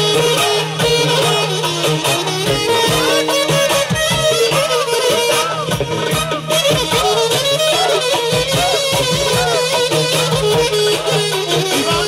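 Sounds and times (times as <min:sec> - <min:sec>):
folk dance band music: 0:00.0 - 0:12.0
steady drum beat: 0:00.0 - 0:12.0.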